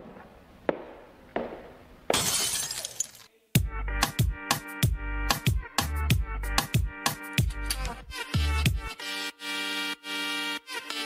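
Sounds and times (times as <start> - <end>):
glass shattering: 2.1 - 3.3.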